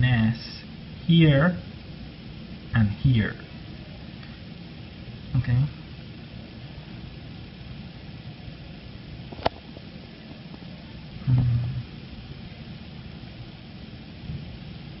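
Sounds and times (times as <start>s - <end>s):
low background hum: 0.0s - 15.0s
person murmuring mm: 11.2s - 11.9s.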